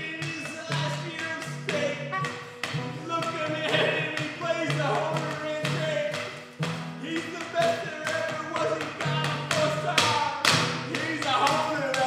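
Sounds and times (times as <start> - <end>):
melodica playing: 1.9 - 4.2.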